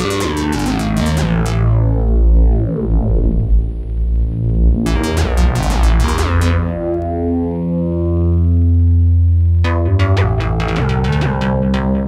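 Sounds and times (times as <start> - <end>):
bright synthesizer notes: 0.0 - 1.8, 4.8 - 6.9, 9.6 - 12.0
low buzzy synthesizer note: 0.0 - 12.0.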